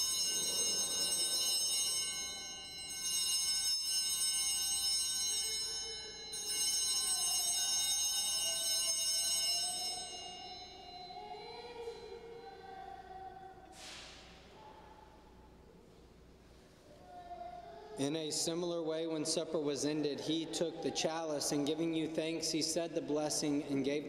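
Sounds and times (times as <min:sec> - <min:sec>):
small bells shaken: 0:00.0 - 0:12.5.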